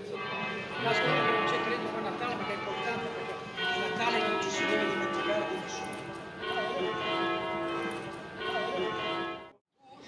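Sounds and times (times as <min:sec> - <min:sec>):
church bells ringing: 0:00.0 - 0:09.6.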